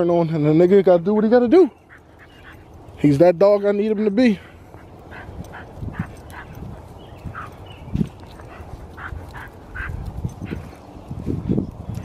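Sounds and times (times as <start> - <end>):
dog breathing hard: 3.8 - 10.9.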